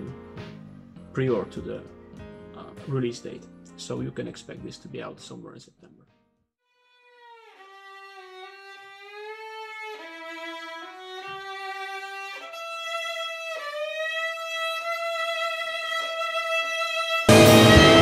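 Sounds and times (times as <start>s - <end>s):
solo violin slow melody: 6.7s - 18.0s.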